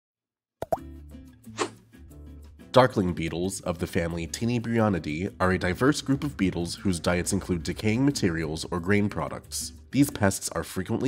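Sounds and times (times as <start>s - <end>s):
short swish: 1.6s - 1.8s.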